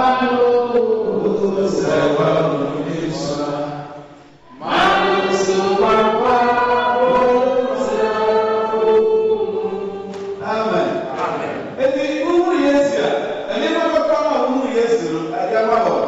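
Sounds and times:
man singing into a microphone: 0:00.0 - 0:03.8.

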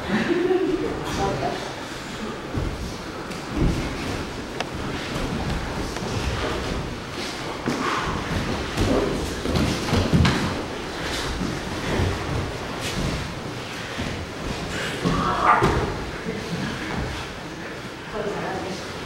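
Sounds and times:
bodies thudding on mats: 0:02.5 - 0:16.1.

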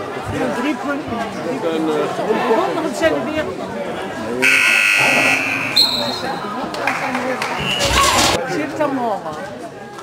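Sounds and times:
scoreboard buzzer tone: 0:04.4 - 0:06.2
short higher-pitched tone: 0:04.4 - 0:06.3.

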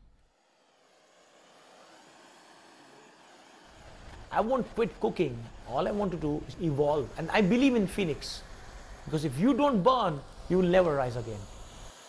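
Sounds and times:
blowtorch flame hissing: 0:00.0 - 0:12.0.

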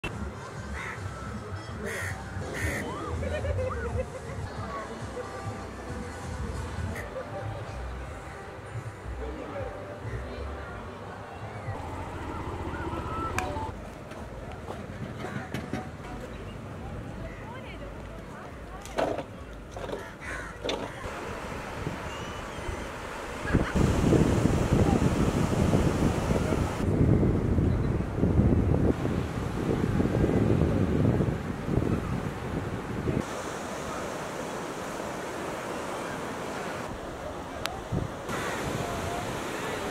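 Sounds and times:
crows cawing: 0:00.8 - 0:01.0, 0:01.9 - 0:02.8, 0:20.0 - 0:21.1
wind and sea rumble: 0:10.8 - 0:39.9
waves breaking: 0:20.9 - 0:26.9, 0:28.0 - 0:39.9
wind buffeting microphone: 0:21.0 - 0:33.3.

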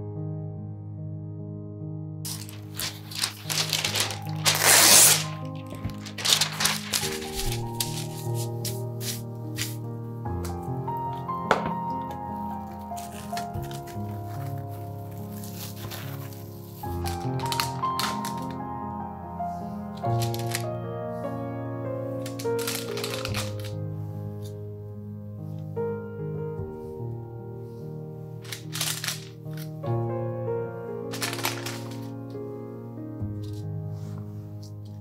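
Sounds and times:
soft piano music: 0:00.0 - 0:35.0
cling film pulled off: 0:02.3 - 0:09.8, 0:11.5 - 0:18.6, 0:20.0 - 0:20.7, 0:22.2 - 0:23.8, 0:28.4 - 0:29.7, 0:31.1 - 0:32.2
parchment paper rustling: 0:02.3 - 0:24.8, 0:28.4 - 0:29.8, 0:31.0 - 0:32.5.

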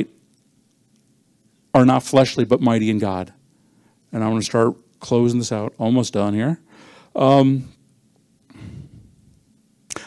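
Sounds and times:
man speaking: 0:01.8 - 0:03.4, 0:04.1 - 0:06.6, 0:07.2 - 0:07.8
man breathing into microphone: 0:06.7 - 0:07.2, 0:08.5 - 0:09.3.

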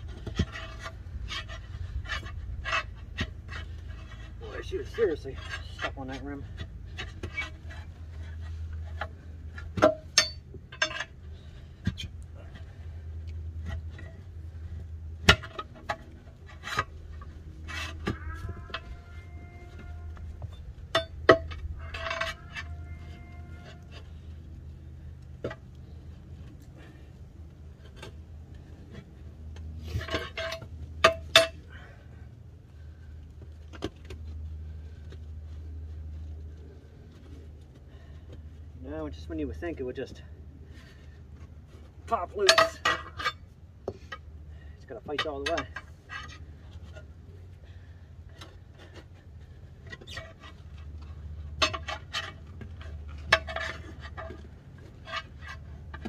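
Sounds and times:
tire iron clinking on wheel rim: 0:00.0 - 0:27.1, 0:27.8 - 0:32.2, 0:41.8 - 0:56.0
steady low hum: 0:00.0 - 0:56.0.

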